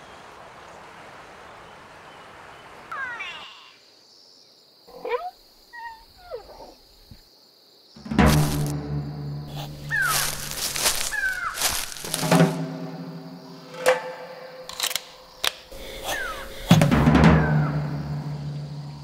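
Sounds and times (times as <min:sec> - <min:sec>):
gliding animal calls: 0:04.9 - 0:06.8, 0:09.5 - 0:11.8, 0:15.8 - 0:17.9
falling cries: 0:09.5 - 0:12.1, 0:15.8 - 0:18.2.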